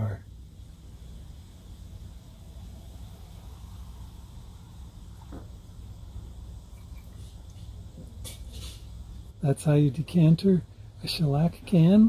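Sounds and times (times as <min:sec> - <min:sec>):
steady low hum: 0:00.0 - 0:12.0
liquid trickling into a jar: 0:06.5 - 0:07.9.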